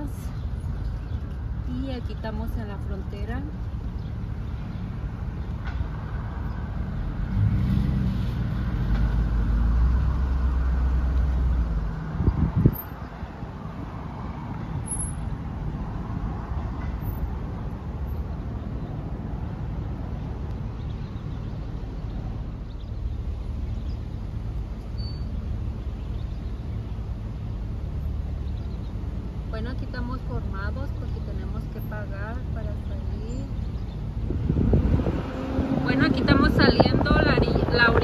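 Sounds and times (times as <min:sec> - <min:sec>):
car engine and road rumble: 0:00.0 - 0:38.0.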